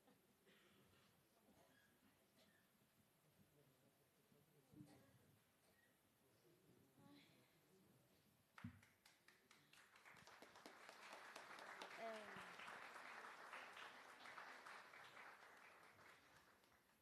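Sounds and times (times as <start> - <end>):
faint audience applause: 8.6 - 17.0.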